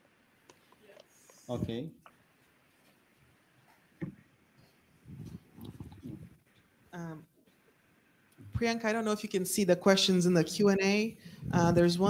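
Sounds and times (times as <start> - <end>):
person saying um: 11.4 - 12.0.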